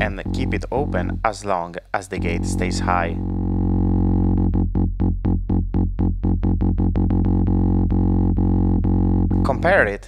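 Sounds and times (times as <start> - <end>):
pulsing buzzy synth drone: 0.0 - 1.2, 2.2 - 10.0.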